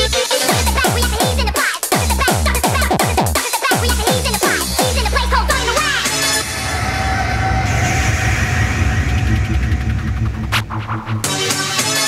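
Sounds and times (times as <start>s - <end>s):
hard electronic dance music: 0.0s - 6.7s, 8.7s - 12.0s.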